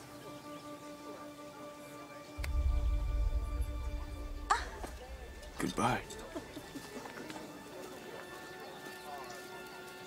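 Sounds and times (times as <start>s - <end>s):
murmur of many voices: 0.0s - 10.0s
quiet music: 0.0s - 10.0s.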